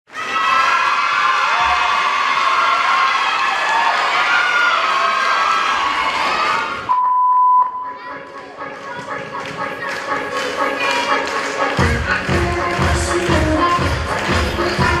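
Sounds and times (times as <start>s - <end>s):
audience cheering and shouting: 0.1s - 6.9s.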